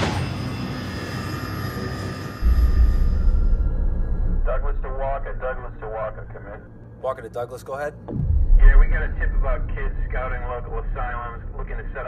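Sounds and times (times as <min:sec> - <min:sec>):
low rumble drone: 0:01.8 - 0:07.0, 0:07.9 - 0:12.0.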